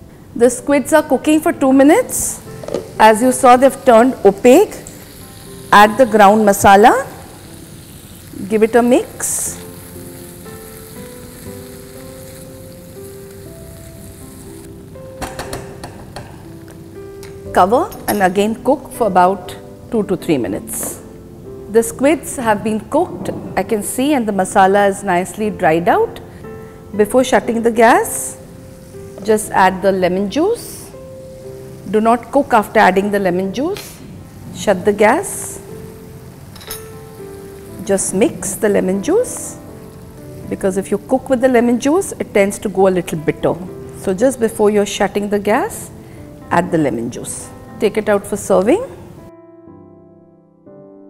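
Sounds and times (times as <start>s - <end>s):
soft background music: 0.0s - 51.0s
food sizzling in a pan: 0.9s - 21.2s, 23.7s - 49.2s.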